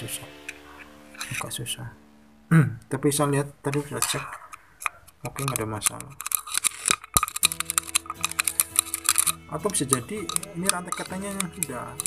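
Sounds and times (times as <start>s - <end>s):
music of steady held tones: 0.0s - 4.0s, 6.3s - 12.0s
quick light clicks and taps: 3.7s - 12.0s.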